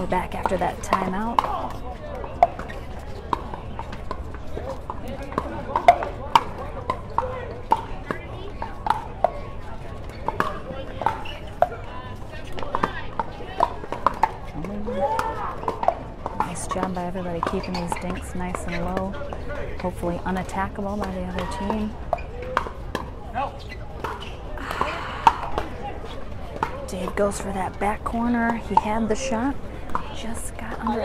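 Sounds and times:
spectators' voices: 0.0s - 31.0s.

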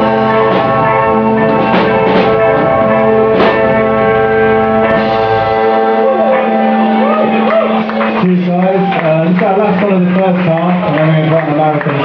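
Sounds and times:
drum crashes: 0.0s - 5.7s
guitar and bass chord: 0.0s - 11.0s.

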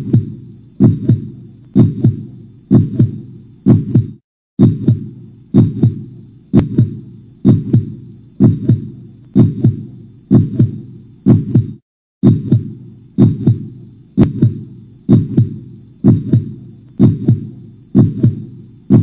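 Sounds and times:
heartbeat lub-dub: 0.0s - 19.0s.

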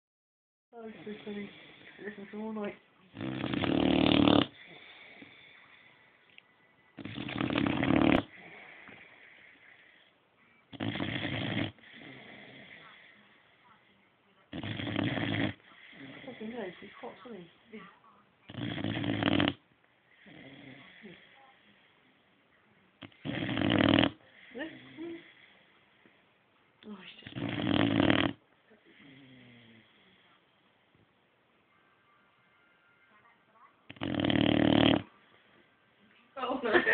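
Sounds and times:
dog snoring: 0.8s - 6.2s, 7.0s - 10.1s, 10.7s - 13.6s, 14.5s - 17.3s, 18.5s - 22.2s, 23.0s - 25.8s, 27.2s - 30.3s, 33.9s - 35.6s
pitched breath: 4.4s - 6.3s, 7.1s - 10.2s.

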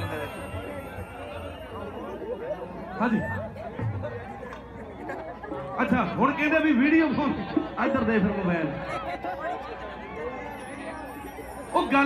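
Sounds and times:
man's voice over sound system: 0.0s - 0.8s, 5.7s - 8.9s, 11.7s - 12.0s
audience chatter: 0.0s - 12.0s.

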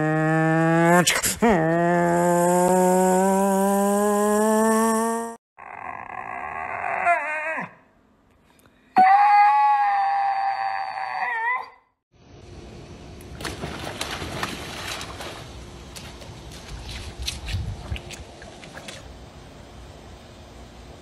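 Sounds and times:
water splashing in pool: 13.3s - 19.2s.

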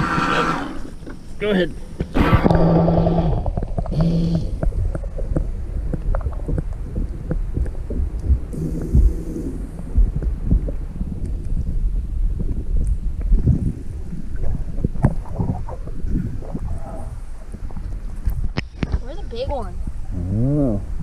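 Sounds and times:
low hum: 0.0s - 21.0s
muffled underwater rumble: 0.0s - 21.0s.

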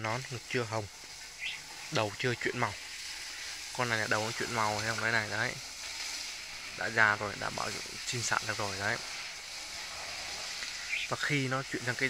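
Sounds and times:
person speaking: 0.0s - 5.6s, 6.8s - 9.1s, 10.7s - 12.0s
steady background hiss: 0.0s - 12.0s.

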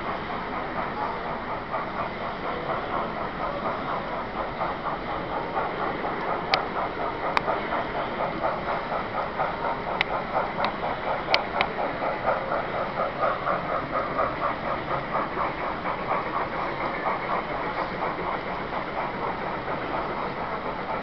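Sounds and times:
model steam locomotive chuffing: 0.0s - 21.0s.

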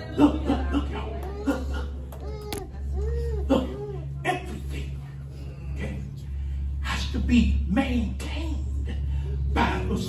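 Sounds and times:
steady low hum: 0.0s - 10.0s
man preaching: 3.6s - 5.1s, 6.8s - 10.0s.

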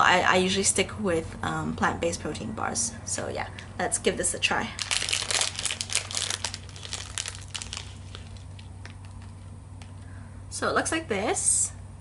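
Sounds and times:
wrapper crinkling and tearing: 4.7s - 9.5s.

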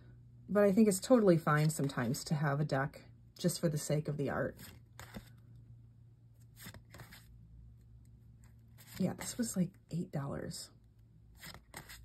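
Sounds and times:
low steady hum: 0.0s - 12.0s
cards sliding and tapping: 4.6s - 5.4s, 6.4s - 7.3s, 11.4s - 12.0s.

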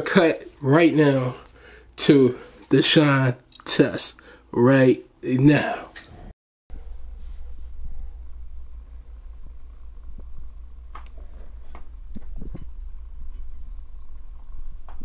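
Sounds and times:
steady low hum: 5.6s - 15.0s.

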